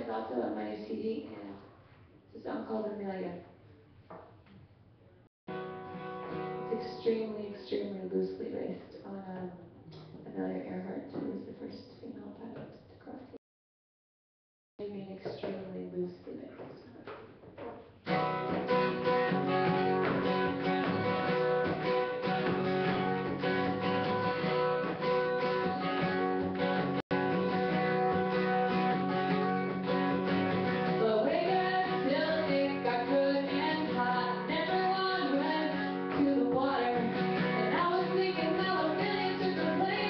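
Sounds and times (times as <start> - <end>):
acoustic guitar strumming: 5.5 - 7.0, 18.0 - 40.0
woman singing: 30.9 - 40.0.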